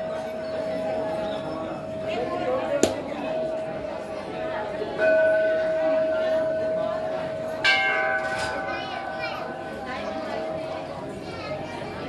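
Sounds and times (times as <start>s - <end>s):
metal temple bell ringing: 0.0s - 11.2s.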